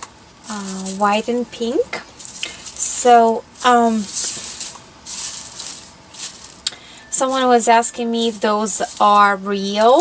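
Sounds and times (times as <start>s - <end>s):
artificial flowers rustling: 0.0s - 10.0s.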